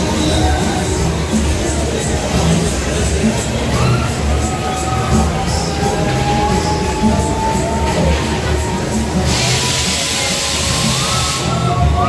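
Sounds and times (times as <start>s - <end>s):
ride music with bass beat: 0.0s - 12.0s.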